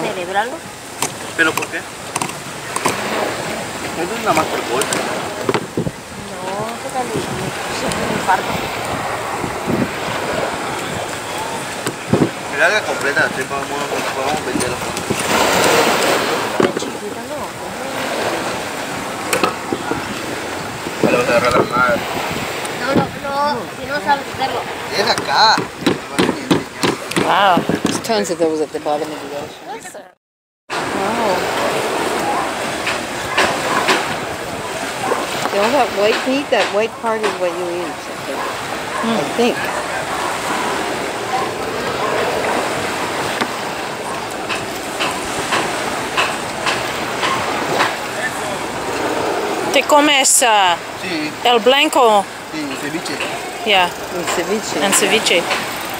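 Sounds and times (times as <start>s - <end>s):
wind noise on microphone: 0.0s - 28.3s, 30.7s - 52.5s
surf: 0.0s - 55.9s
sharp knock: 25.1s - 28.0s.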